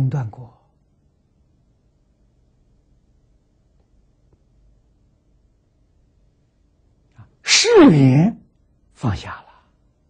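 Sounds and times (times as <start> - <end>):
man speaking: 0.0 - 0.7, 7.2 - 8.4.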